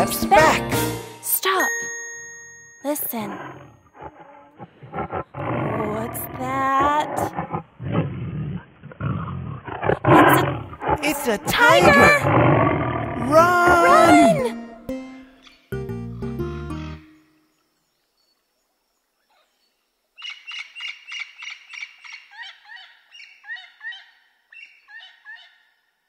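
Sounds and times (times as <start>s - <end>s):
cartoon tiger roaring: 3.3s - 14.6s
voices crying out: 10.1s - 12.4s, 13.1s - 14.8s.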